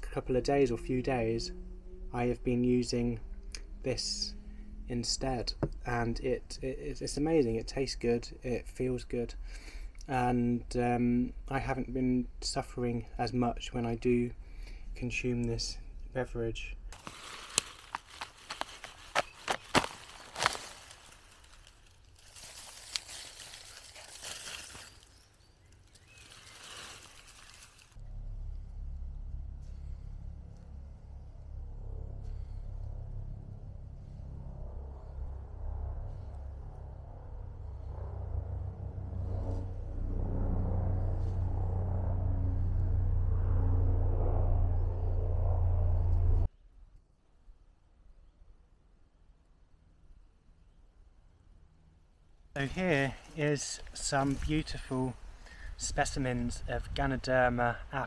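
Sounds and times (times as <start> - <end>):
steady low sound: 0.0 - 25.0, 26.3 - 46.5, 52.6 - 58.0
rustling: 16.9 - 28.0
fungus cracking and snapping: 17.0 - 28.0.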